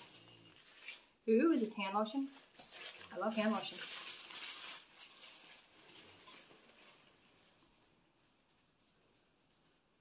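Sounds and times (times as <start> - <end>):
tissue paper crinkling: 0.0 - 1.2, 2.1 - 10.0.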